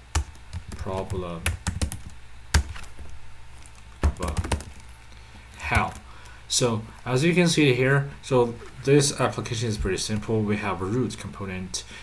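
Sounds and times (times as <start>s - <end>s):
typing on computer keyboard: 0.1s - 2.7s, 4.0s - 4.8s.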